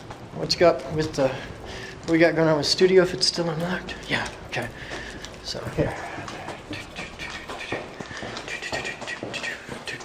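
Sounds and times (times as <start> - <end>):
footsteps on hard floor: 0.8 - 10.0.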